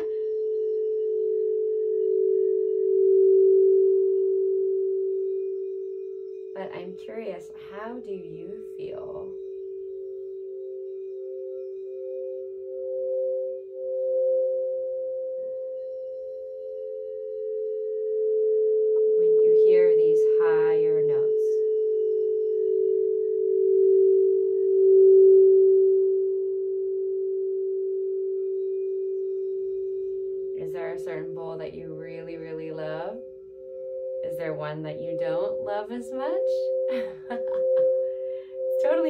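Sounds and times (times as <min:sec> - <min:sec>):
crystal singing bowls ringing: 0:00.0 - 0:39.0.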